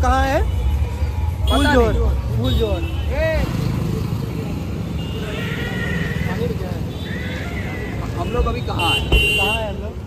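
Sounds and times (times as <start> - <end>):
cars passing: 0.0 - 10.0
road traffic rumble: 0.0 - 10.0.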